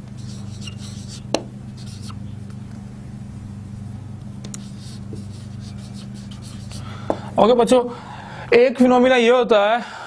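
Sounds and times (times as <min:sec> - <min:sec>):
steady low hum: 0:00.0 - 0:10.0
marker writing on whiteboard: 0:00.2 - 0:02.2, 0:04.5 - 0:06.9.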